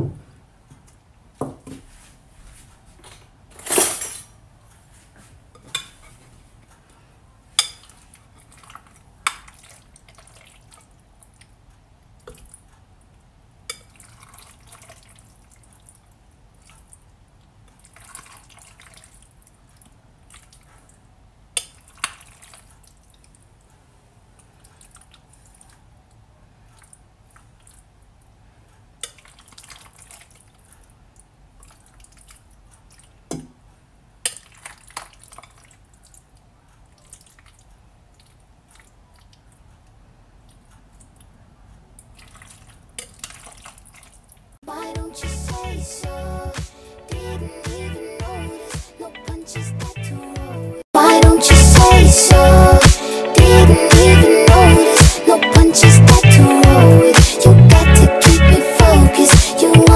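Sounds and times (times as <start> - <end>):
scooping and squishing salad: 7.6 - 11.6, 13.7 - 21.0, 21.6 - 23.6, 24.4 - 25.9, 29.0 - 33.2, 34.2 - 41.3, 42.0 - 44.5.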